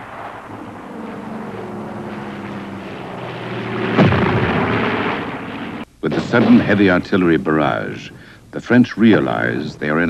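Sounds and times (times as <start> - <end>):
propeller plane engine drone: 0.0 - 6.0
loud blast: 0.0 - 7.4.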